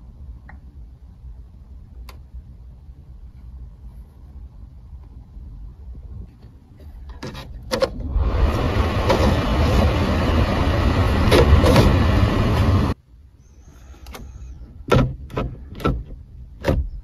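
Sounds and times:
car blower fan rushing air: 7.7s - 13.0s.

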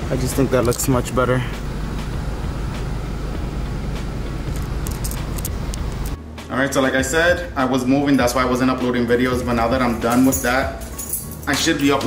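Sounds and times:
car engine idling: 0.0s - 6.2s.

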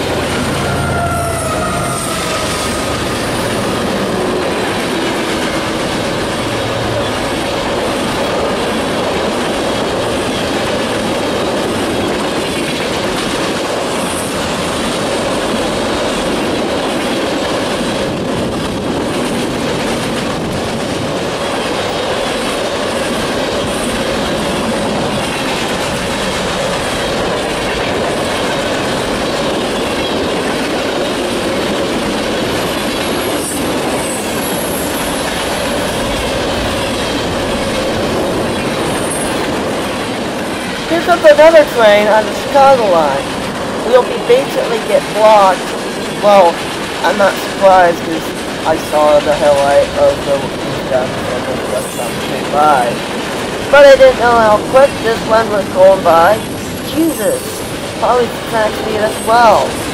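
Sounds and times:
train wheels rolling on rails: 0.0s - 59.9s.

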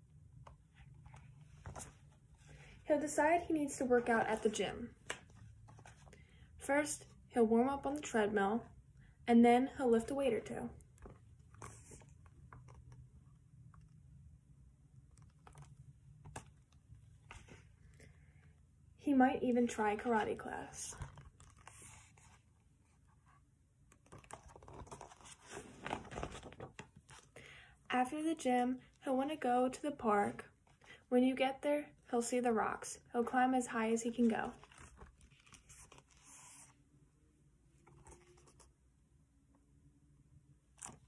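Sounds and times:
paper pages turning: 0.7s - 2.7s, 4.0s - 6.2s, 11.0s - 13.0s, 15.1s - 17.7s, 20.0s - 22.5s, 23.9s - 27.4s, 34.1s - 36.8s, 40.8s - 41.0s.

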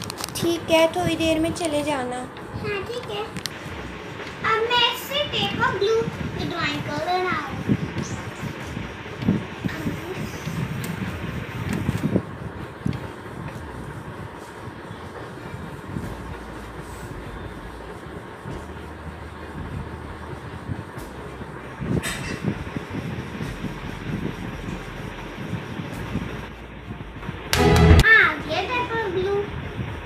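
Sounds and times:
steady background noise: 0.0s - 30.0s
faint low sounds: 27.5s - 28.1s
loud sudden burst: 27.6s - 28.2s.

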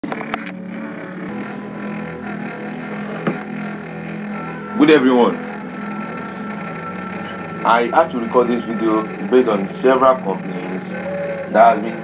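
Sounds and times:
background hum with held tones: 0.4s - 12.0s.

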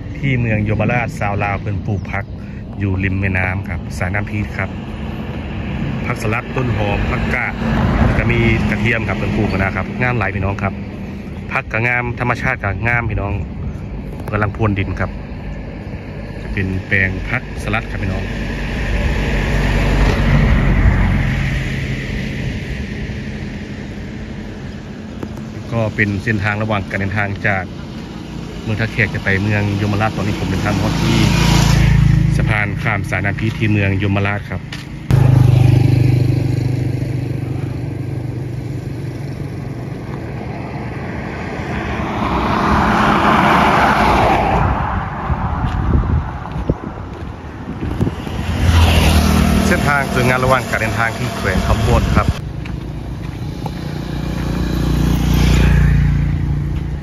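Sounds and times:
vehicle passing by: 3.1s - 13.0s, 13.9s - 57.0s
rushing noise: 14.5s - 27.7s, 39.4s - 52.6s.

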